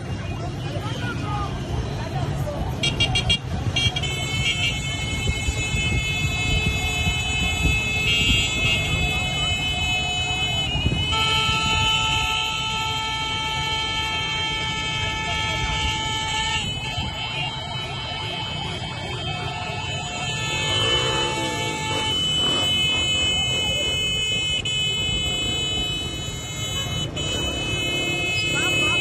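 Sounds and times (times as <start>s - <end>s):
vehicle engines: 0.0s - 29.0s
vehicle horn blasts: 2.8s - 29.0s
siren-like wail: 4.6s - 29.0s.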